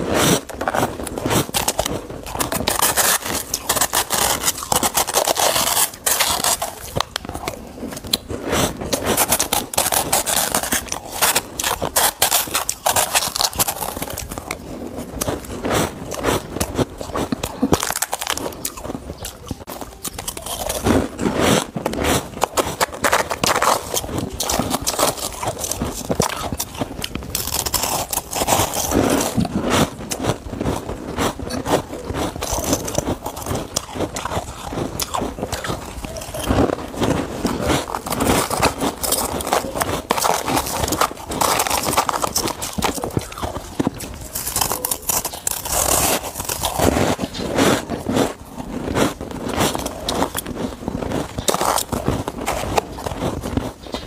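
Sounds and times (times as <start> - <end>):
crunching and chewing frost: 0.0 - 54.0.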